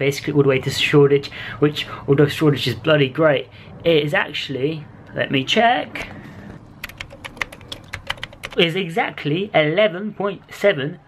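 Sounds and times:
laptop keyboard typing: 6.7 - 8.7.

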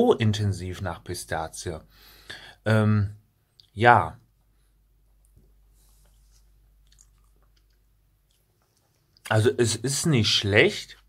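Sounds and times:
small mouth clicks and smacks: 5.1 - 9.3
mouth sounds eating: 6.8 - 9.3.

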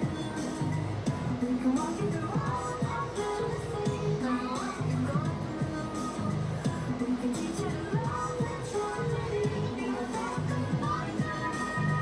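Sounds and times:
music with held melody: 0.0 - 12.0.

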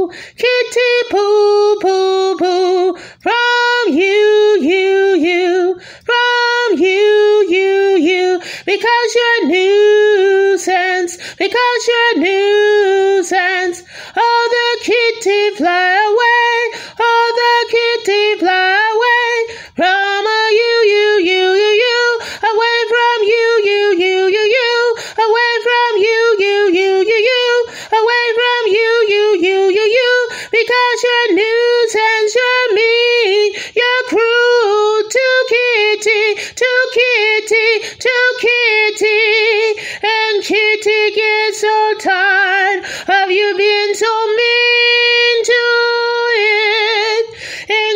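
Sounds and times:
woman singing unaccompanied: 0.0 - 47.9.

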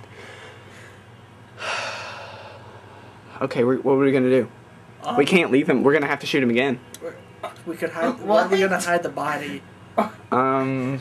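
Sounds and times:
person gasping: 1.6 - 2.7.

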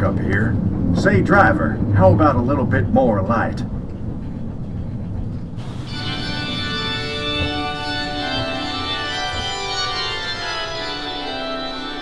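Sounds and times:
ride train rumbling on track: 0.0 - 12.0
organ music: 5.6 - 12.0.

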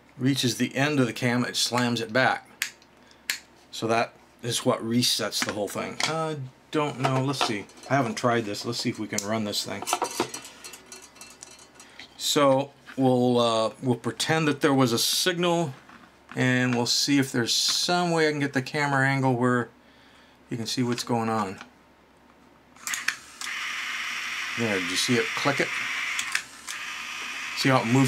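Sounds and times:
small electric motor whirring: 22.8 - 28.0
sharp mechanical clicks: 26.1 - 27.0.

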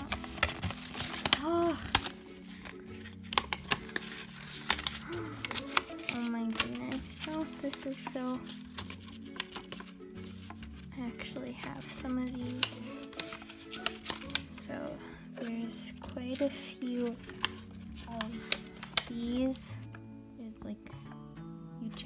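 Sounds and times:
paper crackling: 0.0 - 20.0
background music: 0.0 - 22.0.

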